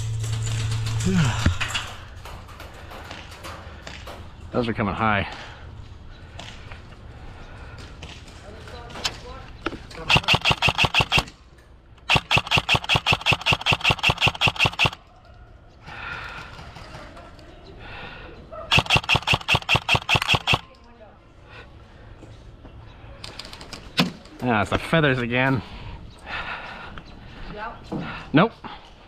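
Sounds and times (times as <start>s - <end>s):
airsoft rifle automatic fire: 10.0s - 11.3s, 12.0s - 15.0s, 18.7s - 20.7s.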